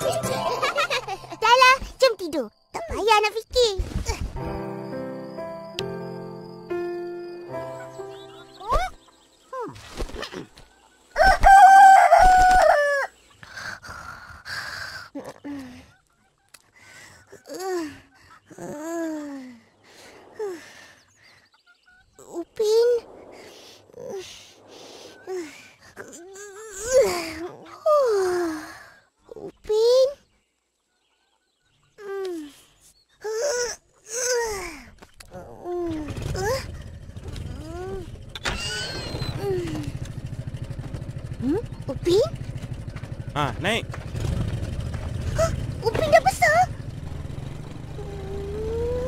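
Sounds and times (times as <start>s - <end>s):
rooster crowing: 11.2s - 13.1s
boy sighing and groaning: 13.0s - 15.9s, 16.8s - 21.0s, 23.8s - 30.2s, 32.0s - 36.8s, 37.4s - 38.2s, 39.3s - 40.0s, 47.9s - 49.0s.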